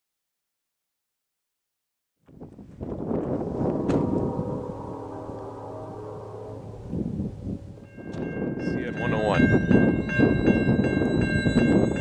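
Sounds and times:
wind buffeting microphone: 2.2s - 12.0s
faint steady chord: 3.4s - 8.2s.

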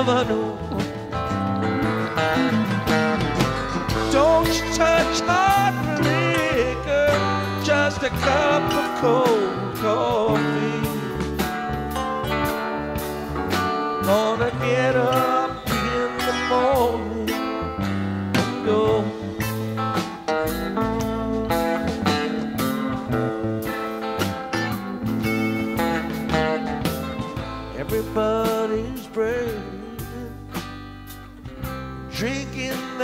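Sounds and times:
bass guitar: 0.0s - 33.0s
drums: 0.0s - 33.0s
electric lead guitar melody: 0.0s - 33.0s.

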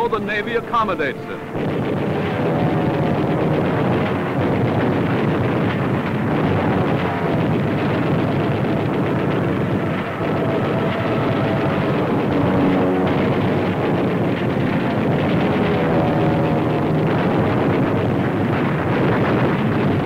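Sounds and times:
aircraft engines roaring: 0.0s - 20.0s.

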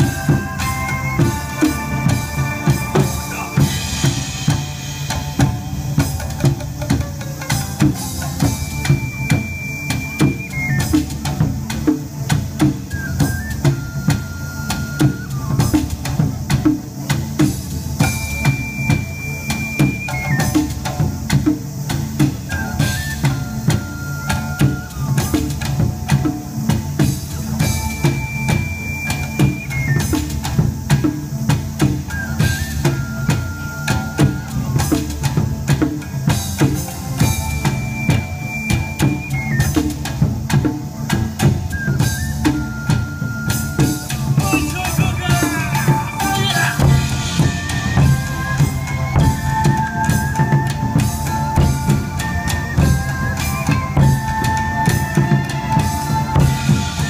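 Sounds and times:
ocarina melody: 0.0s - 17.2s, 18.0s - 57.0s
shamisen accompaniment: 0.0s - 57.0s
taiko drums beating: 0.0s - 57.0s.

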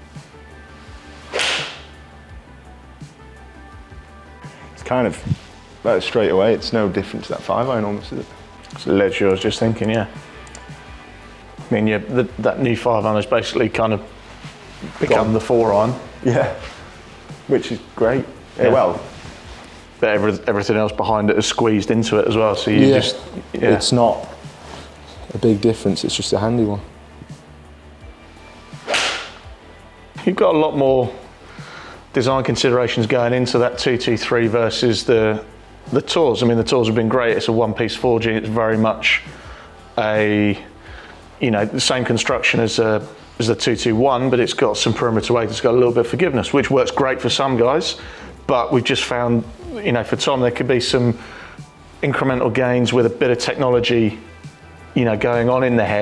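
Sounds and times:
golf club striking ball: 1.3s - 2.0s, 28.8s - 29.4s.

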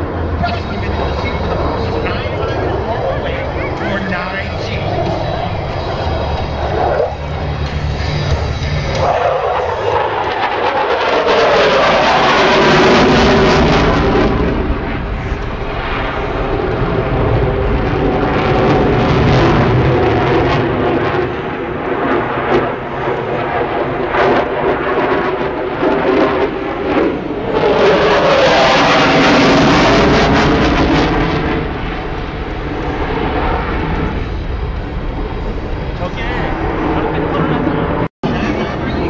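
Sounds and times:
jet engine with afterburner: 0.0s - 39.0s.

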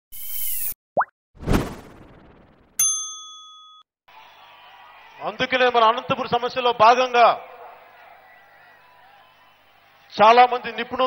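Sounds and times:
bell-like ding: 2.8s - 3.9s.

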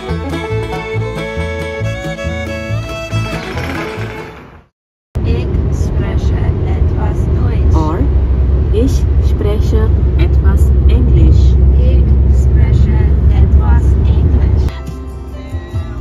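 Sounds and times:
car cabin road rumble: 3.1s - 14.7s.

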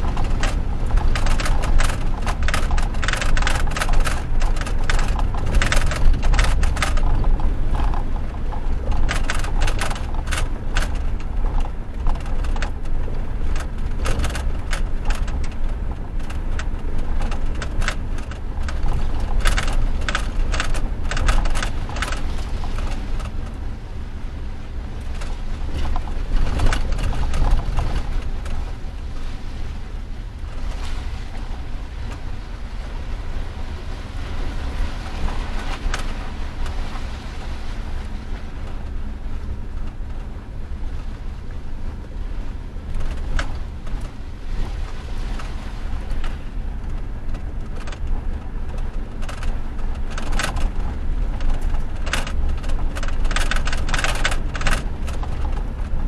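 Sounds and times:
knocks and rattles: 0.0s - 23.6s, 25.1s - 28.6s
truck engine and road rumble: 0.0s - 56.0s.

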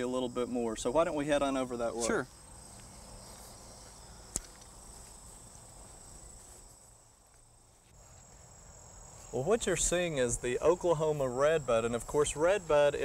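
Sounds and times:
insects trilling: 0.0s - 13.0s
outdoor background hiss: 0.0s - 13.0s
sharp click: 4.3s - 4.7s.

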